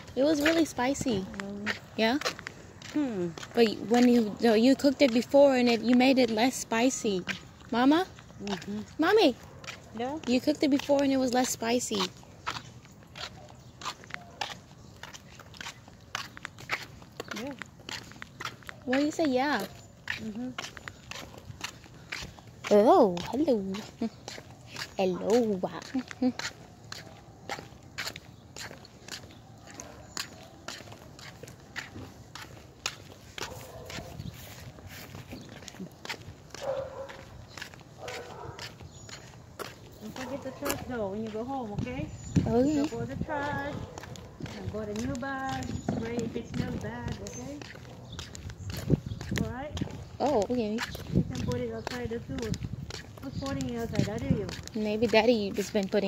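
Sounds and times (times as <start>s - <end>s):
footsteps on concrete: 0.0s - 56.0s.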